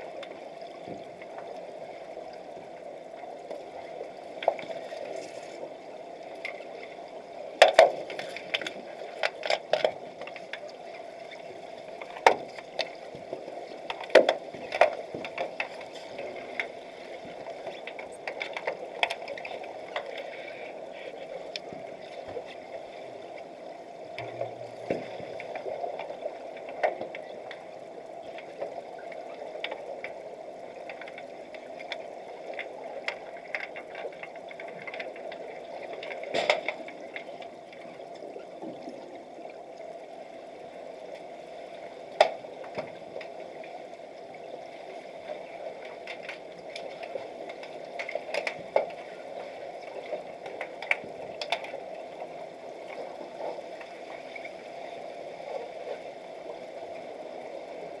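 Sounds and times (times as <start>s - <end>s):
underwater clicks and knocks: 7.6s - 10.7s, 12.0s - 20.6s, 24.1s - 28.8s, 30.8s - 39.1s, 42.2s - 43.4s, 45.8s - 49.1s, 50.0s - 51.8s
muffled underwater noise: 19.4s - 30.0s.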